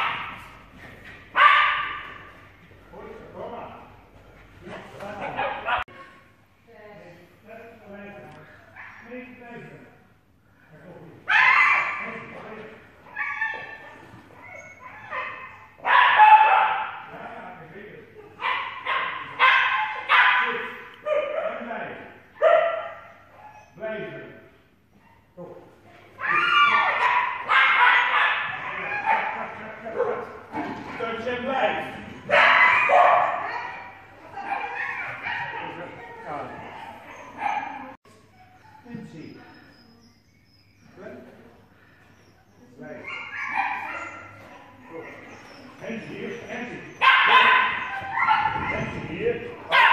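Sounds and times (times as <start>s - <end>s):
dog barking and yipping: 1.4s - 2.2s, 11.3s - 12.2s, 13.1s - 17.0s, 18.4s - 21.6s, 22.4s - 23.7s, 26.2s - 30.3s, 32.1s - 38.0s, 43.0s - 45.7s, 46.3s - 49.0s, 49.6s - 49.9s.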